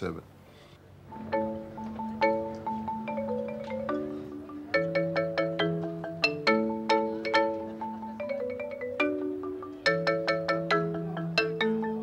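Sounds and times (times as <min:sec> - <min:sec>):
marimba notes and chords: 0:01.0 - 0:12.0.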